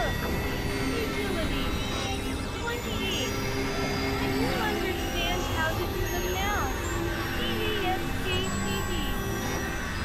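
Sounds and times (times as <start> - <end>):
synthesizer drones: 0.0 - 10.0.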